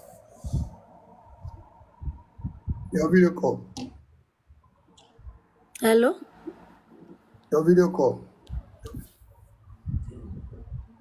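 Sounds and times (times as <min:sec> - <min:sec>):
faint steady hum: 0:00.0 - 0:11.0
dull low thumps: 0:01.5 - 0:02.9.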